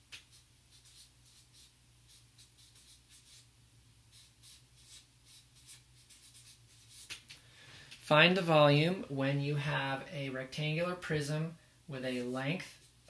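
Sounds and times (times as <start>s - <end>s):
marker scratching on paper: 0.0s - 3.5s, 4.1s - 7.3s
low steady hum: 0.0s - 13.0s.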